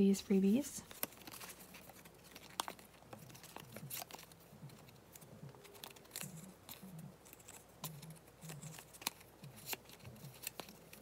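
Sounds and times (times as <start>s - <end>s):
paper rustling: 0.8s - 11.0s
cards clicking together: 0.9s - 11.0s.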